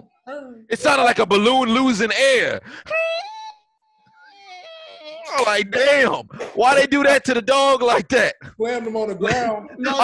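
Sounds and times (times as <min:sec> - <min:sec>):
person's high-pitched squeal: 0:02.9 - 0:05.6.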